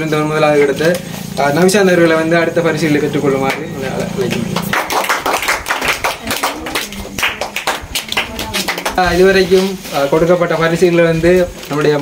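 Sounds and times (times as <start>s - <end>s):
people clapping: 3.4s - 9.7s.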